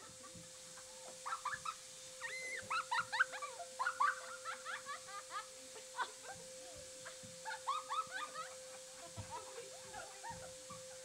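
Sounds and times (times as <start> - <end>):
faint steady hum: 0.0 - 11.0
girl and woman squealing: 2.2 - 3.4.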